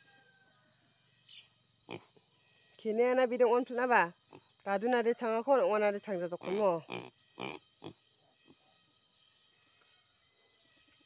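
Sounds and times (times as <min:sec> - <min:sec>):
pig grunting: 0:06.4 - 0:08.0.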